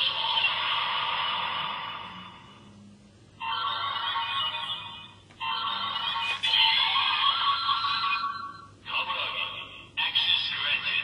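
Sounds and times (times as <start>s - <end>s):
toy playing electronic music: 3.4s - 9.3s.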